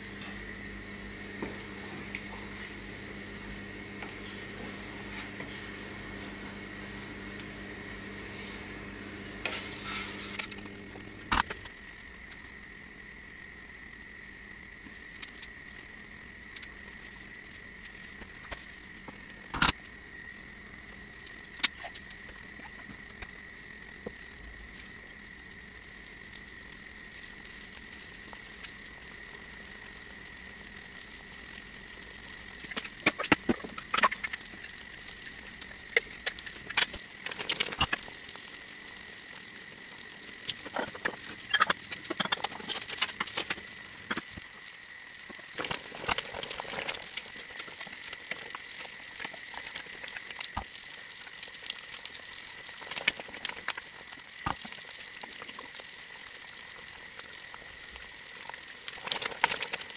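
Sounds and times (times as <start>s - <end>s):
jam bubbling in a pan: 0.0s - 59.9s.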